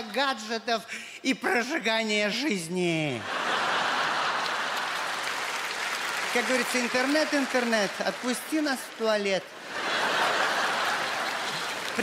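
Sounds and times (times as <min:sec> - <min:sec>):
audience applauding: 0:03.4 - 0:12.0.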